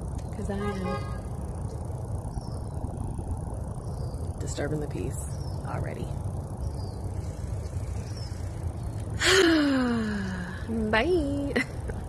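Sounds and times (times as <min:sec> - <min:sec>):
steady low rumble: 0:00.0 - 0:12.0
woman sighing: 0:09.2 - 0:10.6.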